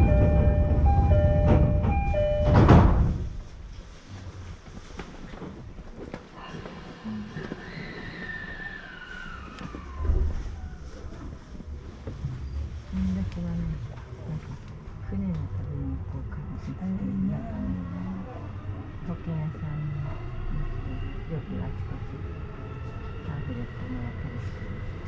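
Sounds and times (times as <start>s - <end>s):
electronic chime alternating tones: 0.0s - 2.7s.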